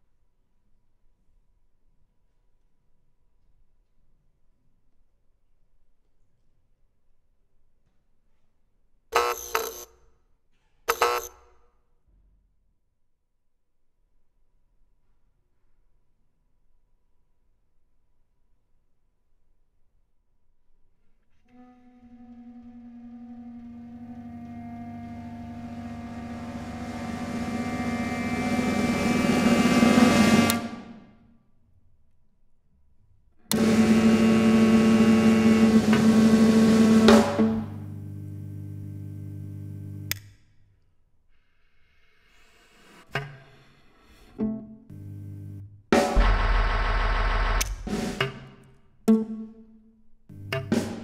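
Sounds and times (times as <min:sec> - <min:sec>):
dense noisy sustained sound: 0:24.6 - 0:30.7, 0:46.2 - 0:48.2
loud dense chord blasts: 0:44.9 - 0:48.5
sharp attack: 0:46.0 - 0:48.6.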